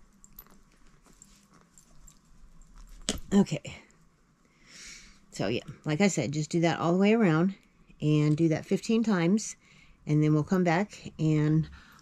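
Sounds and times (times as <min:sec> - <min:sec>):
knitting hook clicks and yarn rustles: 0:02.8 - 0:03.6.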